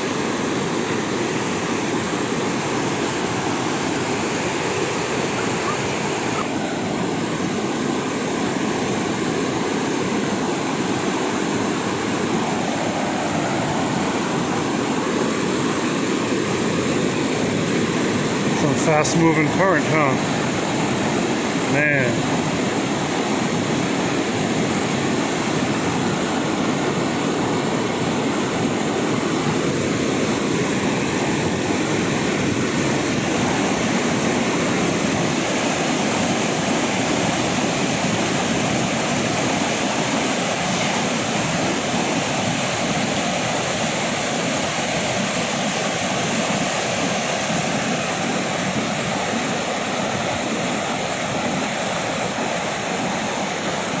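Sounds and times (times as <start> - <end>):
water rushing over rocks: 0.0 - 54.0.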